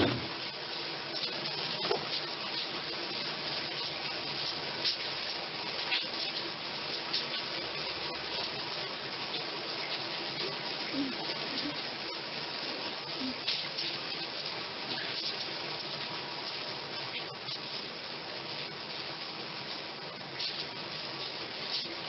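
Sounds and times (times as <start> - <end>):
water running in tiled room: 0.0 - 22.0.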